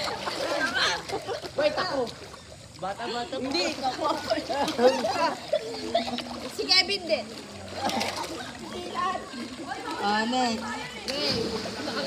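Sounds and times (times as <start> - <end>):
children laughing: 0.0 - 2.1, 3.8 - 6.8, 7.7 - 10.0, 11.3 - 12.0
pool water splashing: 0.0 - 12.0.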